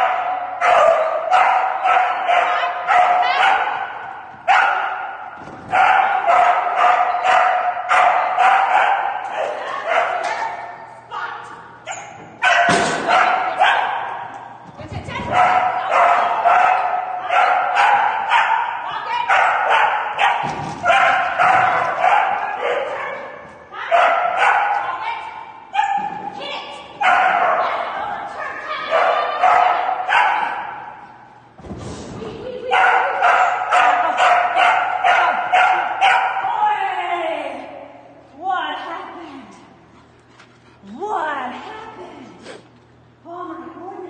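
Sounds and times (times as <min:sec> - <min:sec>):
dog barking in an arena: 0:00.0 - 0:10.8, 0:11.8 - 0:14.6, 0:15.2 - 0:31.4, 0:32.6 - 0:36.6.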